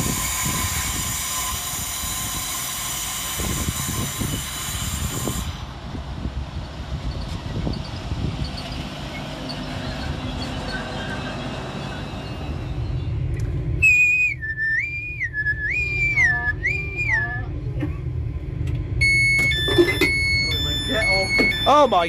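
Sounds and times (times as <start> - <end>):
train low hum: 0.0 - 22.0
short sharp beeps: 19.0 - 22.0
two-note door chime: 19.0 - 22.0.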